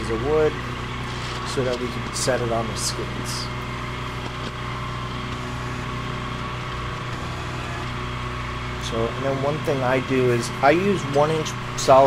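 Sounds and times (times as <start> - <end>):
engine idling: 0.0 - 12.0.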